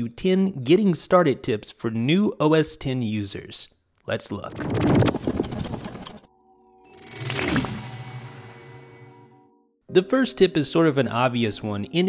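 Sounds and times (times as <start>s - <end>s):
rising sweep: 6.3s - 9.7s.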